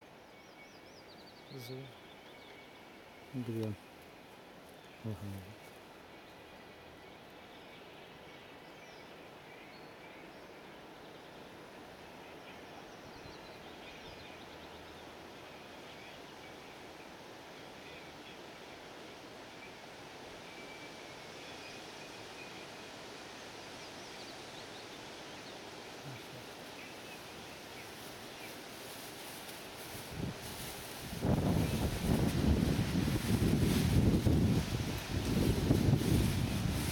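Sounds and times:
outdoor background noise: 0:00.0 - 0:36.9
leaves rustling: 0:01.0 - 0:08.7, 0:15.6 - 0:36.9
wind buffeting microphone: 0:29.8 - 0:36.9.

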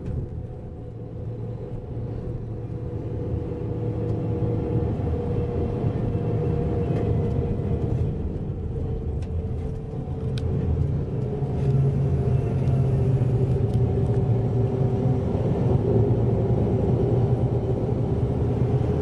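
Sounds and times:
bus engine drone: 0:00.0 - 0:19.0
road rumble: 0:00.0 - 0:19.0.

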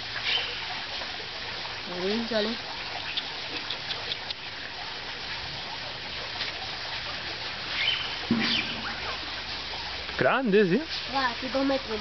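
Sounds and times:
water lapping and splashing: 0:00.0 - 0:12.0.

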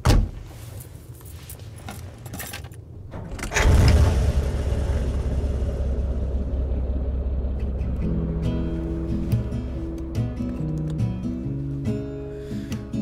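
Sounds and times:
vehicle engine rumbling: 0:00.5 - 0:12.7.

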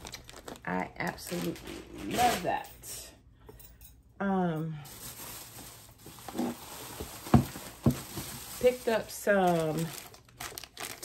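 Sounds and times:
dull knocks of items moved: 0:06.3 - 0:08.4.

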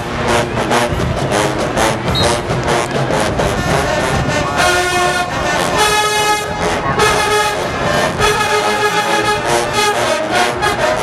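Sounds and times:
brass band playing held chords: 0:00.0 - 0:11.0.

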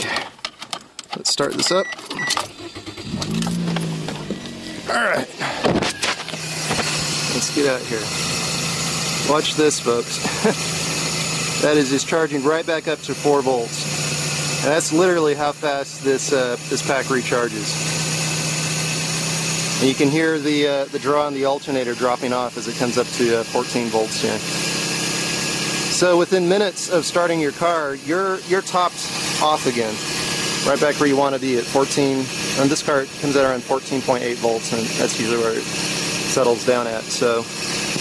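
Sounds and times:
car engine starting and idling: 0:00.0 - 0:38.0
alternator hum and hiss: 0:02.8 - 0:38.0.

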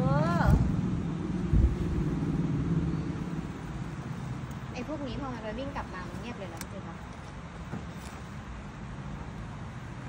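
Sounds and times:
low motor rumble: 0:00.0 - 0:07.7.

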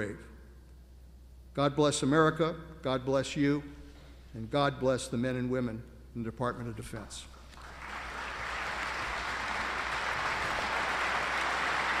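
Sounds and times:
audience applauding: 0:07.6 - 0:12.0.

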